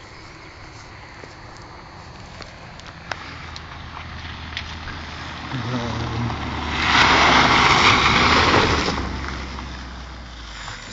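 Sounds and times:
tyres hissing on gravel: 0.0 - 10.9
car engine passing: 0.2 - 10.9.

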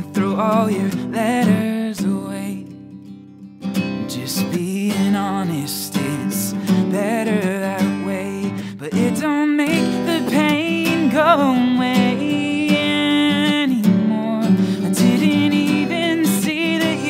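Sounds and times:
man singing: 0.0 - 2.8, 4.0 - 17.0
strummed acoustic guitar: 0.0 - 17.0.

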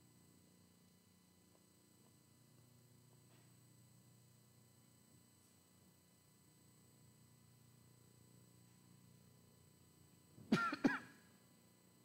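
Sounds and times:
man clearing his throat: 10.4 - 11.3.

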